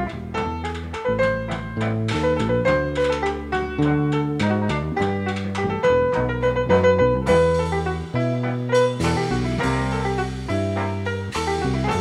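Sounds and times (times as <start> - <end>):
jazz trio playing: 0.0 - 12.0.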